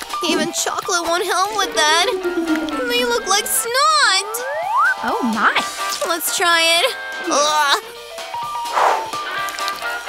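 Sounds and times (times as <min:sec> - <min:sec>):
music with held notes: 0:01.2 - 0:05.6.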